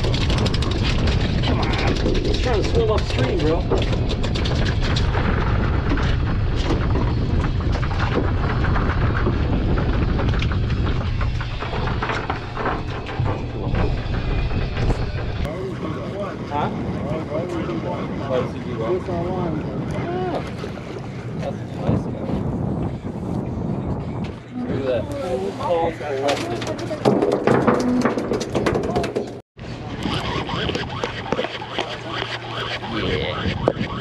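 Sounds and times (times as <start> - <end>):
wind buffeting microphone: 0.0 - 34.0
clicks and knocks: 26.3 - 29.4
wavering voices: 29.8 - 34.0.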